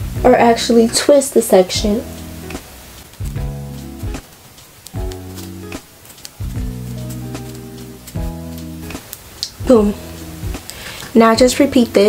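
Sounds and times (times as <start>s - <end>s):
low bass: 0.0s - 0.9s, 1.8s - 4.2s, 6.4s - 9.0s, 9.6s - 10.7s.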